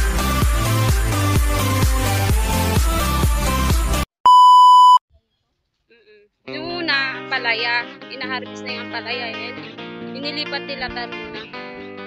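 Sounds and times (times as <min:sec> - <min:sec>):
loud electronic beep: 0:04.3 - 0:05.0.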